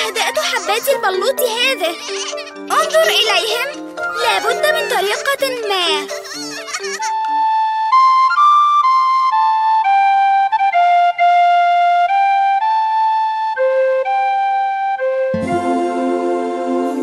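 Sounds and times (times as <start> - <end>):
slow flute melody: 7.1 - 17.0.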